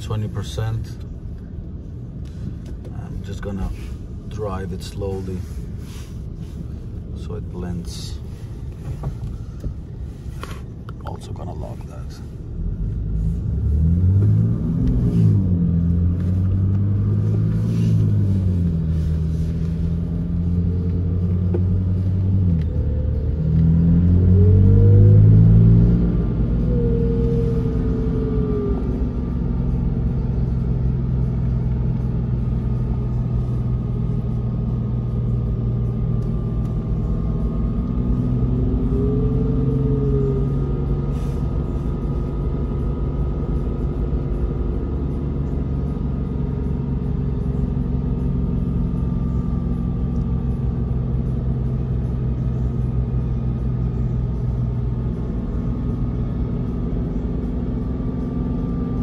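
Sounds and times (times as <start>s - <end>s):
car engine revving in cabin: 0.0s - 59.0s.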